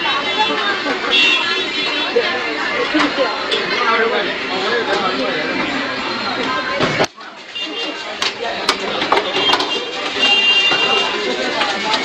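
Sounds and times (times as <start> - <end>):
busy background voices: 0.0 - 12.0.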